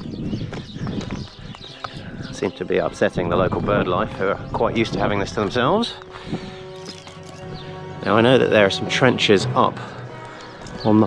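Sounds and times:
footsteps on stone steps: 0.0s - 3.1s, 5.0s - 7.7s, 10.0s - 11.0s.

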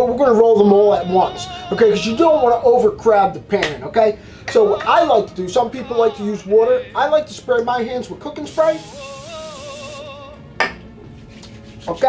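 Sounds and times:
held wavering vocal note: 0.8s - 3.0s, 4.5s - 7.3s, 8.9s - 10.6s.

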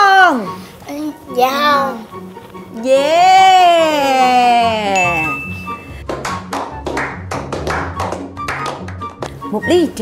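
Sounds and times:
background music: 0.0s - 10.0s
people clapping in rhythm: 6.0s - 9.3s.

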